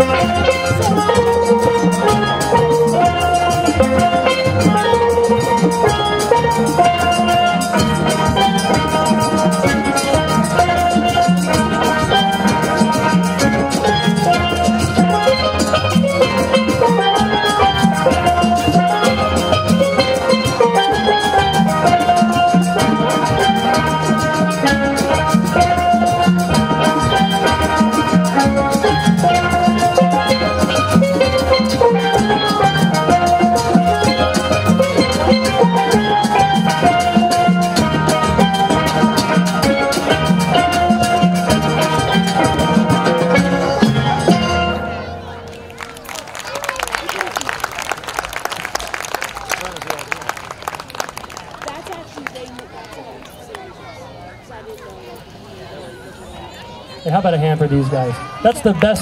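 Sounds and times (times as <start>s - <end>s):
steady drum beat: 0.0s - 44.7s
steel pans playing melody: 0.0s - 52.8s, 56.9s - 59.0s.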